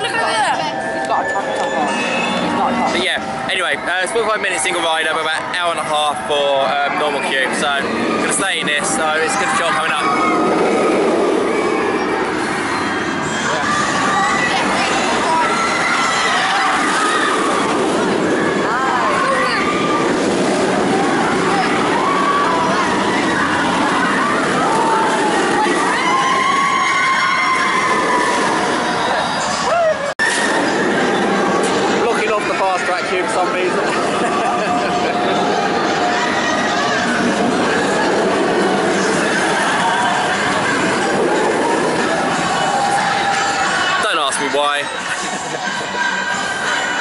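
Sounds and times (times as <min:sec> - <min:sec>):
voices: 0:00.0 - 0:27.1
roller coaster rumbling on track: 0:00.0 - 0:47.0.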